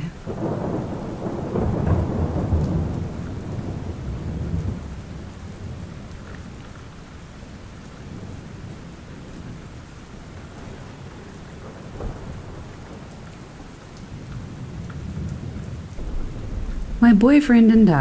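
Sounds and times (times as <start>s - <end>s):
rain falling: 0.0s - 18.0s
thunder rumbling: 0.0s - 18.0s.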